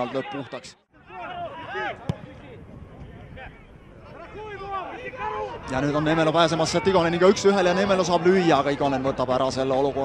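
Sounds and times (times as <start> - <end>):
ball being kicked: 2.1 - 2.4.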